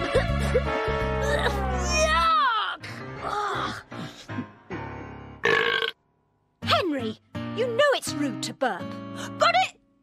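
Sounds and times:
background music: 0.0s - 10.0s
loud burp: 5.4s - 6.0s.

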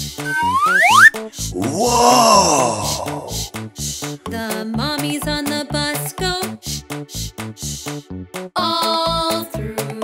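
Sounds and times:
upbeat children's music: 0.0s - 1.7s, 2.8s - 10.0s
quick rising whistle: 0.2s - 1.2s
comic groaning sound effect: 1.5s - 3.5s.

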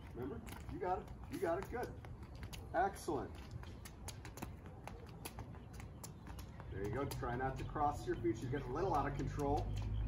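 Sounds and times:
sneaker footsteps on concrete: 0.0s - 10.0s.

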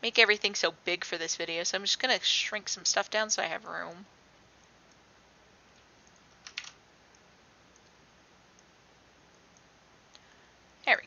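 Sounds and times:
sharp computer clicks: 6.0s - 8.7s.

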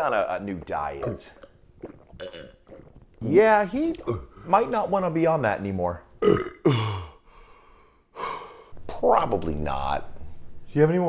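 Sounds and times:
man burping: 1.0s - 3.0s, 3.8s - 4.5s, 6.2s - 7.2s.

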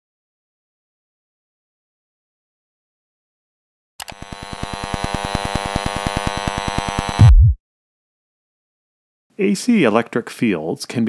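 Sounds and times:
pulsing electronic buzz: 4.0s - 7.6s
deep hit: 7.2s - 7.6s.

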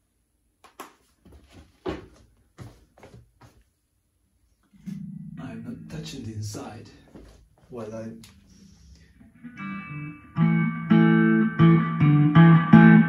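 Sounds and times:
electric guitar chords: 4.7s - 13.0s.

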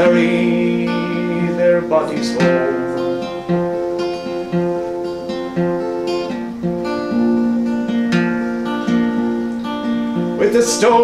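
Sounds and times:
acoustic guitar picked and strummed: 0.0s - 11.0s.

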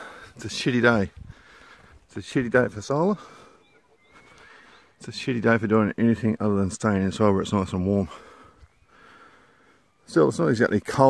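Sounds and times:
man's voice: 0.0s - 1.2s, 2.1s - 3.3s, 5.0s - 8.2s, 10.1s - 11.0s
high bird calls: 0.0s - 11.0s.

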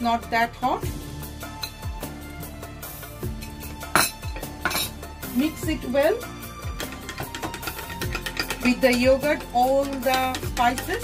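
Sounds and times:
background music with beat: 0.8s - 11.0s
metal spoon clinking crockery: 3.9s - 5.0s, 6.7s - 11.0s.

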